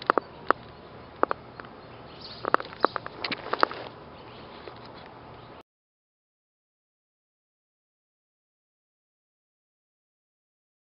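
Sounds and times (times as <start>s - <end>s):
faint outdoor background: 0.0s - 5.6s.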